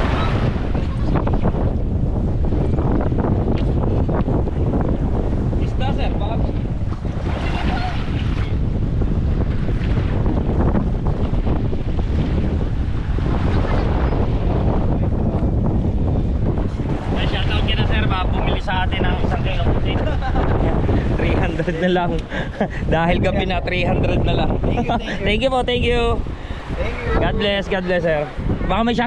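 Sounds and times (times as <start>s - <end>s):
small waves washing ashore: 0.0s - 15.2s, 15.8s - 23.8s, 24.6s - 29.0s
wind buffeting microphone: 0.0s - 29.0s.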